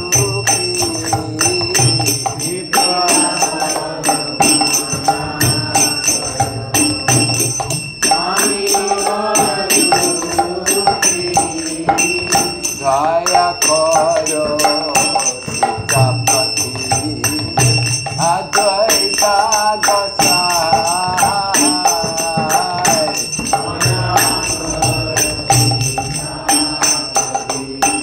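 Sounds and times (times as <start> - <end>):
brass hand cymbals ringing: 0.0 - 28.0
drum beating: 0.0 - 28.0
voices singing: 0.0 - 28.0.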